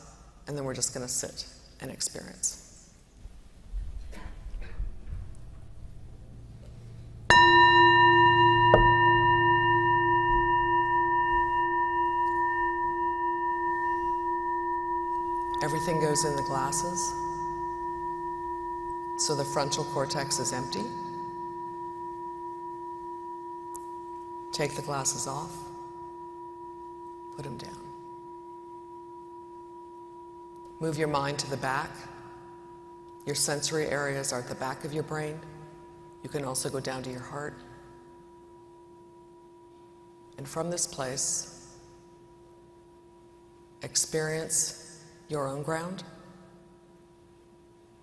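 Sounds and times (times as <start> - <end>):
singing bell ringing: 7.3 - 44.3.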